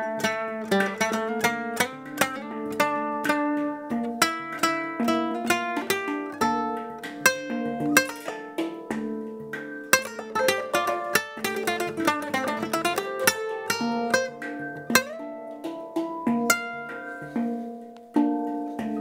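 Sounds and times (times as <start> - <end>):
handpan tones: 0.0 - 19.0
plucked classical guitar: 0.0 - 19.0.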